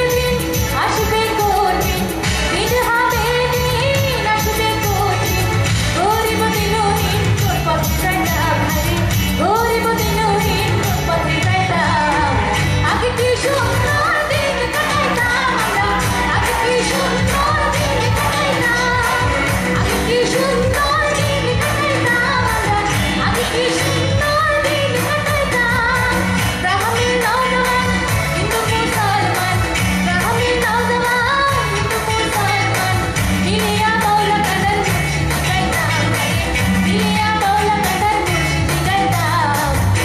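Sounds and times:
live band playing: 0.0 - 40.0
woman singing into a microphone: 0.0 - 40.0.

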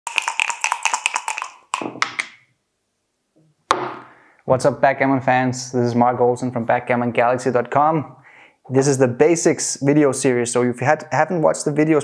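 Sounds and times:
dice rattling in cup: 0.1 - 2.3
sharp knock: 3.7 - 4.1.

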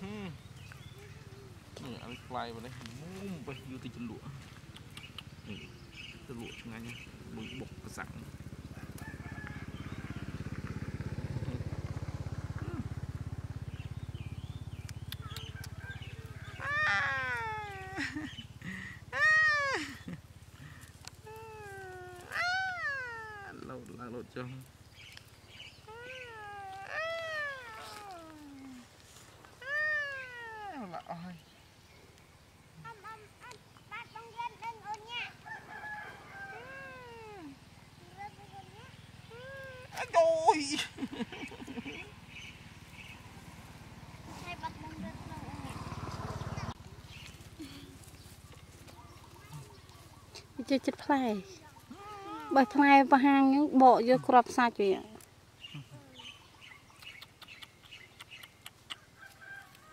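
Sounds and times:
baby monkey crying: 15.2 - 23.9, 25.8 - 28.9, 29.6 - 31.2, 35.2 - 37.6, 39.2 - 42.1, 48.9 - 53.2.

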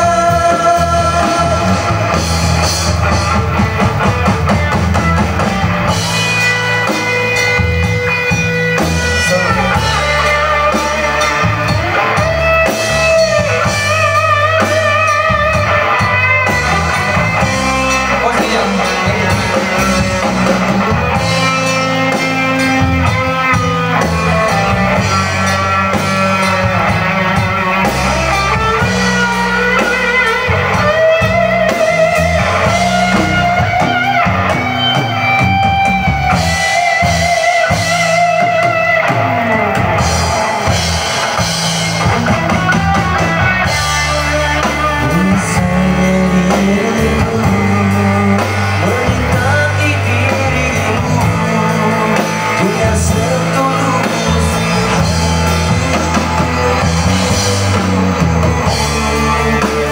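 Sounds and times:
bass line: 0.0 - 59.9
lead guitar long wavering notes: 0.0 - 59.9
live band with guitar and drums: 0.0 - 59.9.

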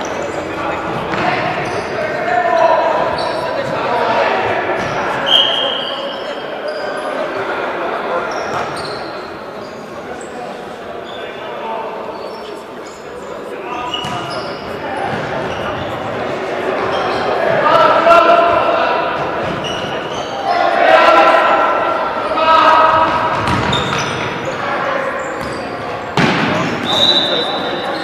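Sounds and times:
players shouting: 0.0 - 8.7, 13.6 - 28.0
ball kicked and bouncing on court: 1.1 - 1.5, 22.9 - 24.2, 26.2 - 26.5.

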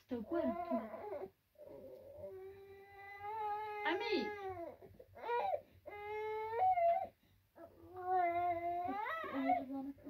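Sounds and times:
baby crying: 0.3 - 9.8.

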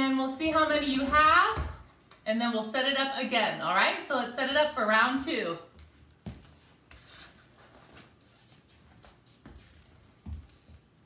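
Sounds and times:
footsteps on wood floor: 0.4 - 1.9, 5.7 - 8.0, 8.7 - 10.9.

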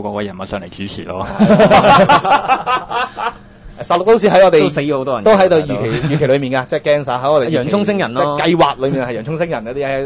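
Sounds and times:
person laughing: 1.2 - 3.4
man speaking: 3.8 - 10.0.

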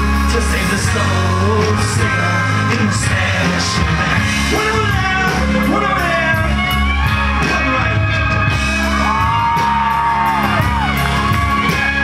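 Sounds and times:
bending held lead guitar line: 0.0 - 12.0
live rock band playing: 0.0 - 12.0.

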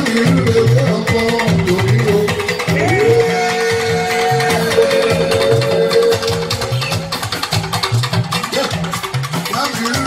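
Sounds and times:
bass line: 0.0 - 10.0
busy percussion: 0.0 - 10.0
electric guitars: 0.0 - 10.0.

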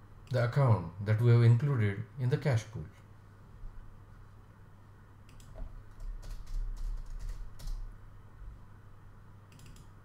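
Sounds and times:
low steady hum: 0.0 - 10.0
computer keyboard typing: 5.3 - 7.9, 9.5 - 9.9.

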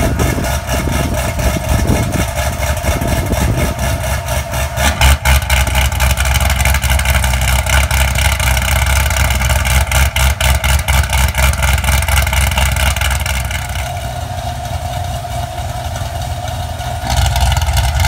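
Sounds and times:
car engine idling unevenly: 0.0 - 18.0.

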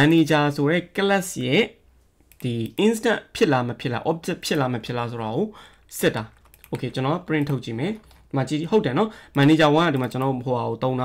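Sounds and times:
man speaking: 0.0 - 11.0
computer keyboard keystrokes: 2.3 - 2.5, 5.7 - 8.4, 9.3 - 10.4.

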